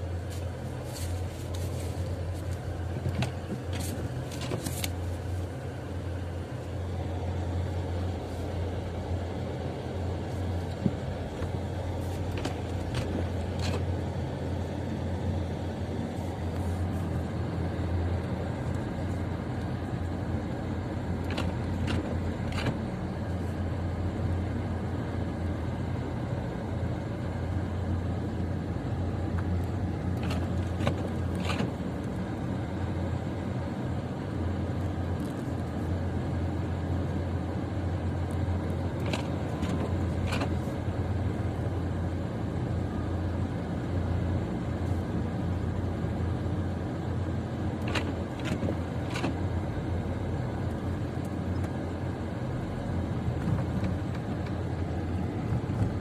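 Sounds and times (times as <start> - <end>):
car engine and road drone: 0.0 - 56.0.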